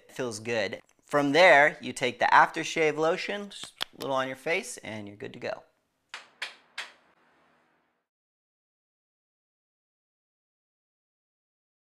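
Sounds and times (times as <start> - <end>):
sharp percussive hits: 6.1 - 7.6.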